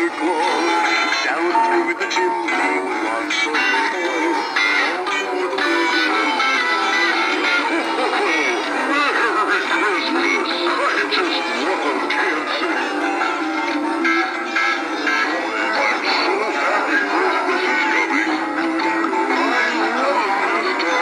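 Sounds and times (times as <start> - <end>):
toy figures playing songs: 0.0 - 21.0.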